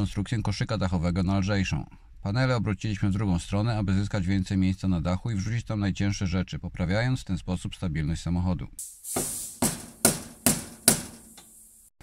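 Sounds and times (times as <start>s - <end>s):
tool knocking on metal roof rack: 9.6s - 11.3s.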